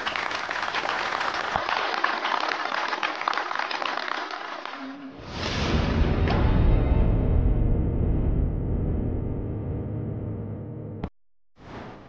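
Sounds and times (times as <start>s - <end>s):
audience applauding: 0.0s - 5.2s.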